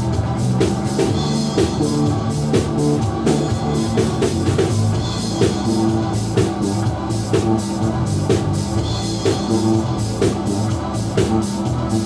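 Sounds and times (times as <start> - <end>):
drum kit hits: 0.0 - 12.0
electric bass notes: 0.0 - 12.0
live band playing: 0.0 - 12.0.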